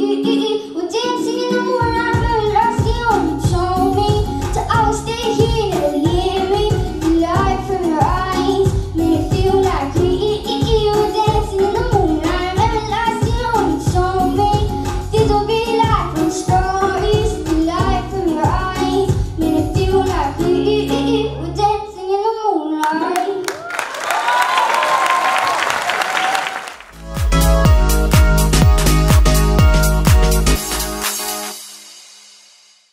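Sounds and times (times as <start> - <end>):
girl singing into microphone: 0.0 - 23.4
backing track bass and beat: 1.8 - 20.7, 26.9 - 31.6.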